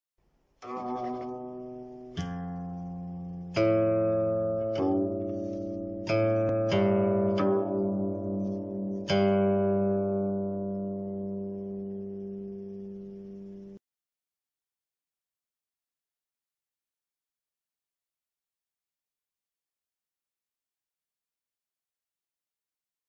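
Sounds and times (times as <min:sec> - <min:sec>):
plucked zither notes: 0:00.6 - 0:13.8.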